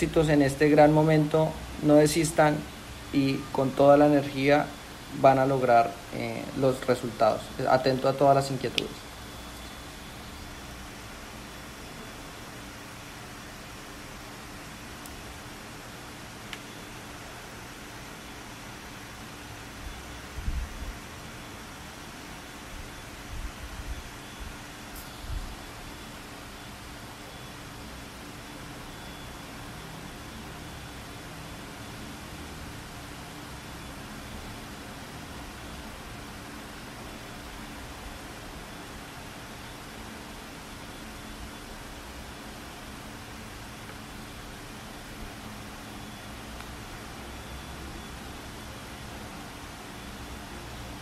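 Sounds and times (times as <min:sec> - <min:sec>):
microphone background hiss: 0:00.0 - 0:51.0.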